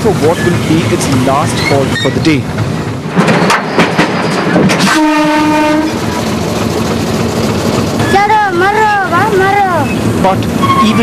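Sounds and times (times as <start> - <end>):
train wheels clattering on rails: 0.0 - 11.0
train horn blast: 4.8 - 6.0.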